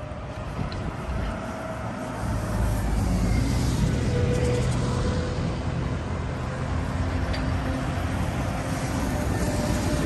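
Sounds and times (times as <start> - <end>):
bus engine rumble: 0.0 - 10.0
city traffic hum: 0.0 - 10.0
tyre and road noise: 0.0 - 10.0.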